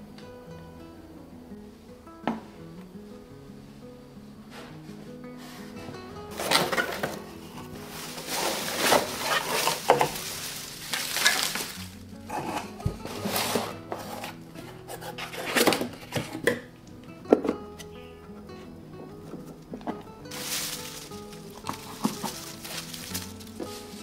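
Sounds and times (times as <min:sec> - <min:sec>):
soft background music: 0:00.0 - 0:24.0
cardboard rustling and scraping: 0:05.4 - 0:16.7, 0:19.4 - 0:24.0.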